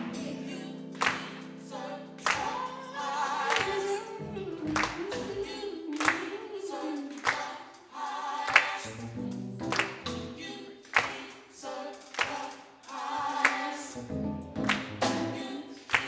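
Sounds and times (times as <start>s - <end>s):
gospel group singing in harmony: 0.0s - 16.0s
hand claps: 1.0s - 1.4s, 3.5s - 3.8s, 4.7s - 5.2s, 6.0s - 6.2s, 7.2s - 7.5s, 8.5s - 8.8s, 9.7s - 10.0s, 10.9s - 11.4s, 12.1s - 12.6s, 13.4s - 13.7s, 14.6s - 15.0s.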